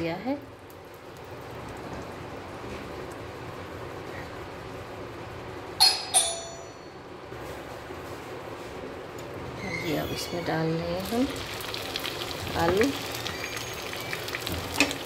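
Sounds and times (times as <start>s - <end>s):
ghee sizzling in a pan: 10.2s - 15.0s.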